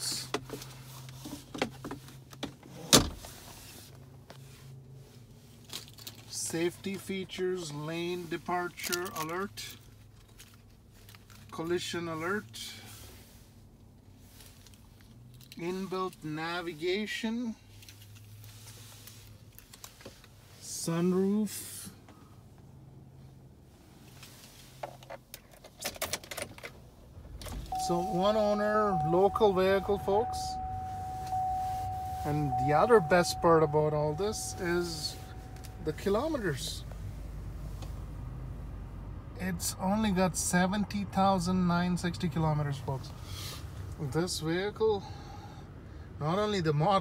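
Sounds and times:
car cabin hum: 26.5 - 39.0
steady high tone: 27.6 - 36.9.

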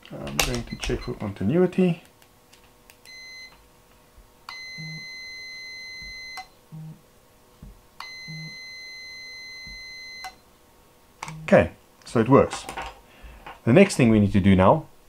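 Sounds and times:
multimeter high beeps: 3.1 - 3.6, 4.5 - 7.0, 8.0 - 10.4.

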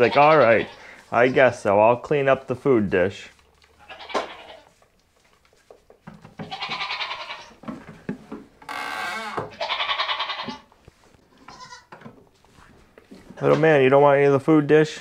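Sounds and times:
goats bleating: 0.0 - 1.5, 3.7 - 4.8, 6.4 - 7.6, 8.7 - 10.7, 11.4 - 11.9.

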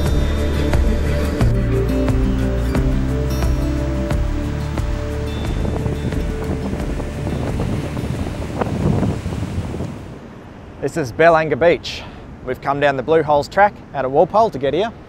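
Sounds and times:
background music: 0.0 - 9.8
wind on microphone: 0.0 - 10.8
surf washing onto beach: 0.0 - 12.9.

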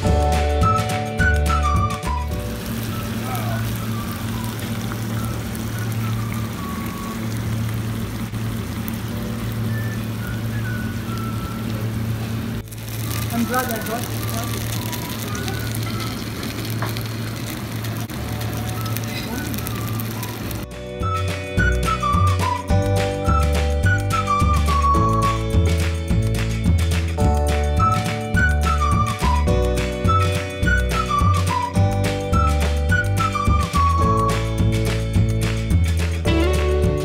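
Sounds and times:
steady hum and hiss: 0.0 - 20.9
faint background music: 12.9 - 16.5.

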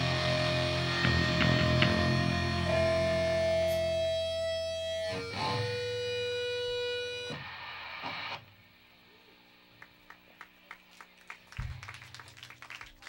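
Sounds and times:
distorted electric guitar note: 0.0 - 8.5
audience hand claps: 9.8 - 13.0.

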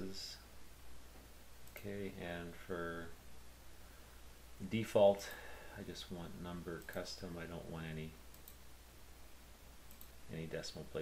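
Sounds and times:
low steady hum: 0.0 - 11.0
computer mouse clicks: 1.6 - 1.8, 8.3 - 8.6, 9.9 - 10.2.

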